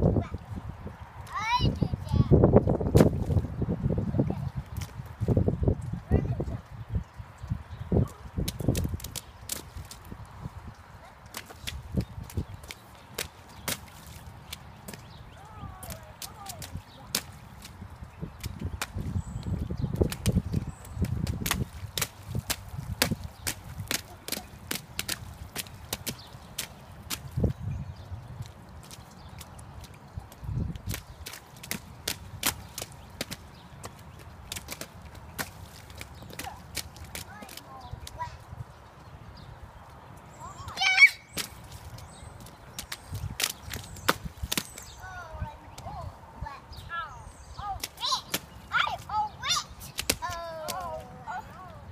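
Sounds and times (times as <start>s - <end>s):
child's voice: 0.1s - 0.4s, 1.3s - 2.4s, 6.0s - 6.6s, 15.4s - 17.1s, 37.2s - 38.5s, 40.4s - 41.1s, 45.0s - 51.9s
boots splashing in puddle: 8.0s - 38.4s, 39.9s - 45.0s, 47.7s - 51.1s.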